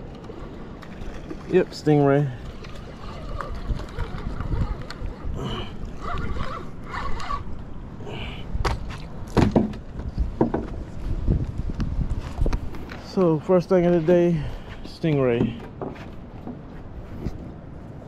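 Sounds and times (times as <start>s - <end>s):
wind buffeting microphone: 0.0s - 18.0s
knocks and thumps on wooden planks: 8.6s - 10.8s, 15.3s - 16.6s.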